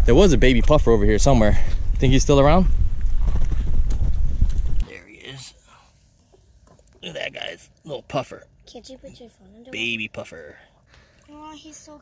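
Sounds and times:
wind buffeting microphone: 0.0s - 4.8s.

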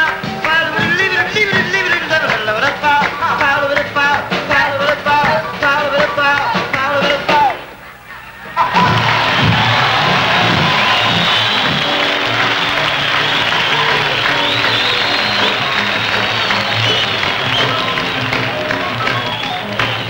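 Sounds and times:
audience applause and cheering: 0.0s - 20.0s
jazz combo playing: 8.3s - 20.0s.

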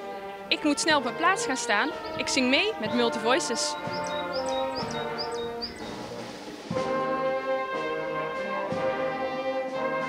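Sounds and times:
marching brass band playing: 0.0s - 10.0s
small bird chirping: 2.0s - 6.3s.

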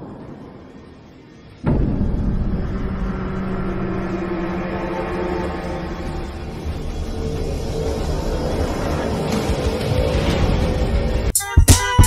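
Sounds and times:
deep rumbling drone: 0.0s - 11.3s
sudden hit: 0.0s - 11.3s.

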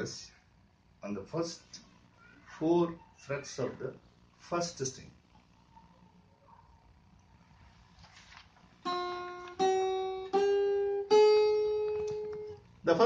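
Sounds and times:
guitar single notes picked: 8.8s - 12.6s.

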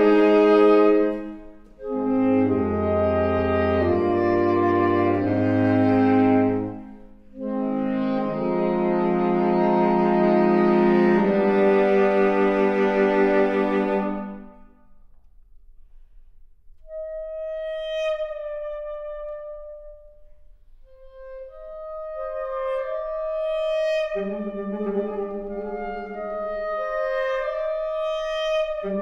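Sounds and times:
saxophone quartet playing: 0.0s - 14.7s, 21.0s - 29.0s.

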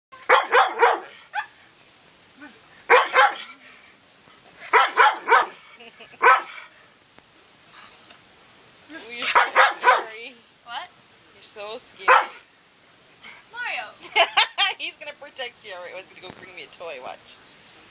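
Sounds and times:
large dog barking: 0.2s - 1.5s, 2.9s - 3.5s, 4.6s - 5.6s, 6.2s - 6.7s, 9.2s - 10.2s, 12.1s - 12.4s.

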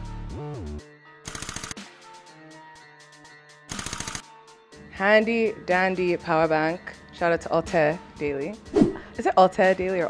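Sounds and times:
rapid clicking bursts: 1.3s - 1.8s, 3.7s - 4.2s
faint background music: 1.3s - 10.0s.

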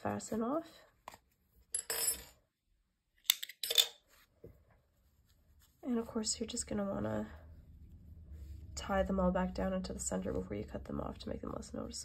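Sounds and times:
metal tools clinking on wood: 3.3s - 4.0s
soft rustle: 4.0s - 11.8s.

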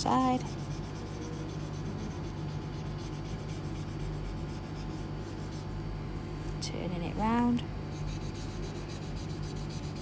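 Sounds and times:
scratchy rubbing on paper: 0.1s - 5.7s, 7.9s - 10.0s.

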